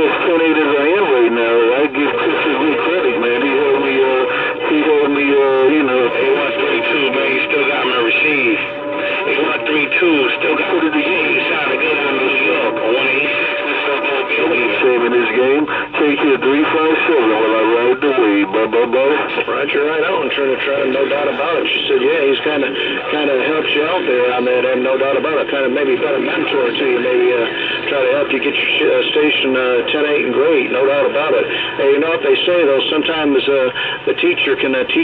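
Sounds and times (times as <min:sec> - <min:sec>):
garbled radio voices: 0:00.0 - 0:35.0.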